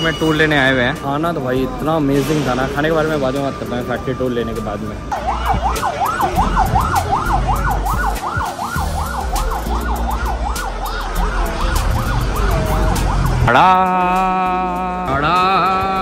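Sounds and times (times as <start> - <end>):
siren warbling: 2.8 - 14.6.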